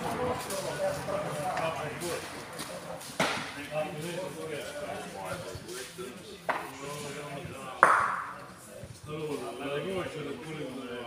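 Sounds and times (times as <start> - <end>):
men talking: 0.0 - 11.0.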